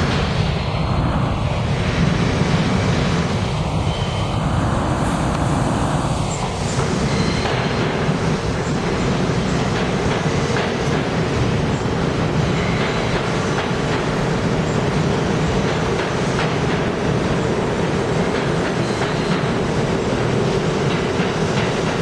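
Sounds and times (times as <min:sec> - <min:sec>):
train wheels rumbling on rails: 0:00.0 - 0:22.0.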